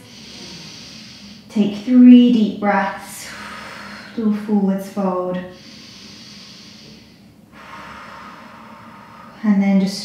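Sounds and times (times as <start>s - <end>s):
woman breathing deeply: 0.0s - 1.6s, 2.7s - 10.0s.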